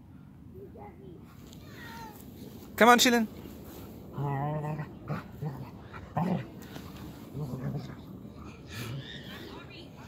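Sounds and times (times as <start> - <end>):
dogs growling and whining: 4.1 - 9.6.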